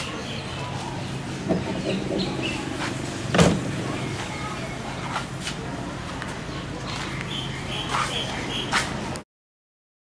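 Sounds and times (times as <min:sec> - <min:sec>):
sharp thump: 0:01.5 - 0:03.9.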